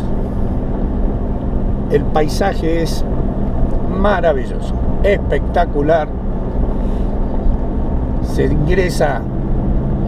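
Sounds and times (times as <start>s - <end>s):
vehicle engine rumbling under load: 0.0s - 10.0s.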